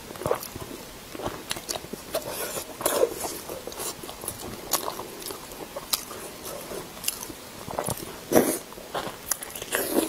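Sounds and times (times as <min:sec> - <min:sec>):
chewing clicks: 0:01.2 - 0:08.1.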